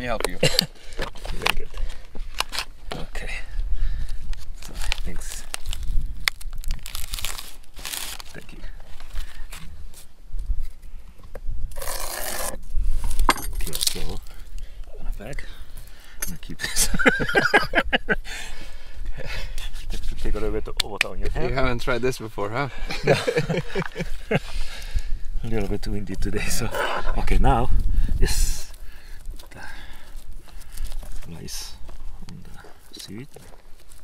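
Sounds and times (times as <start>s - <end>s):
dry seaweed sheet crinkling and tearing: 4.3s - 9.6s, 28.6s - 34.0s
wind buffeting microphone: 11.3s - 13.7s, 23.4s - 32.5s.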